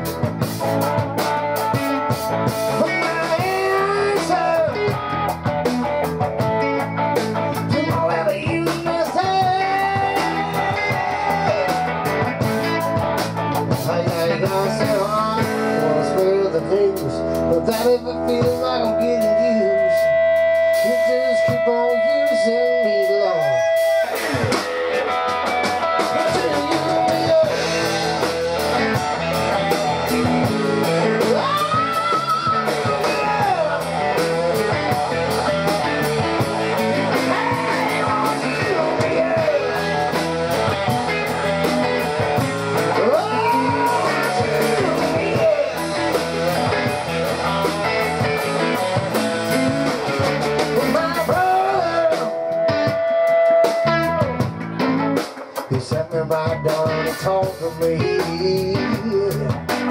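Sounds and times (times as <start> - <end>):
live rock band playing: 0.0 - 59.9.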